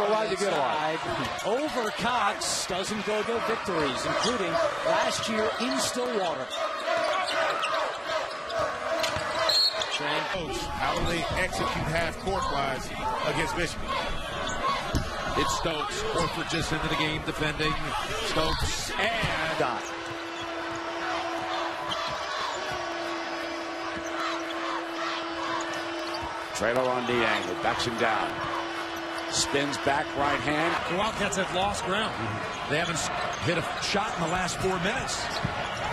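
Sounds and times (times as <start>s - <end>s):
crowd noise: 0.0s - 35.9s
sneakers squeaking on court: 5.1s - 10.0s, 18.5s - 29.8s, 30.7s - 35.9s
basketball bouncing on court: 18.5s - 24.6s, 27.4s - 31.8s, 35.2s - 35.9s.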